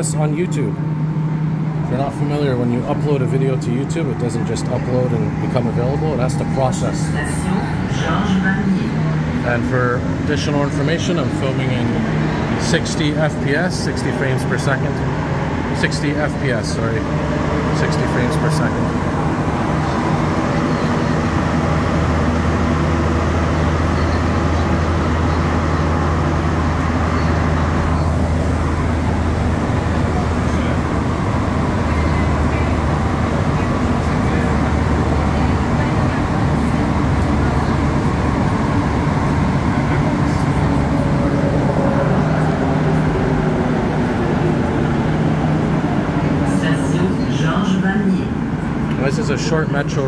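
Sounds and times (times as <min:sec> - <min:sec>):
low hum: 0:00.0 - 0:50.0
train running noise rumble: 0:00.0 - 0:50.0.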